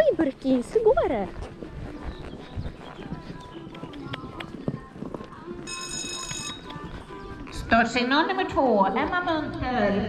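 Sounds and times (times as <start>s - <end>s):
horse hoofbeats on sand: 0.0s - 10.0s.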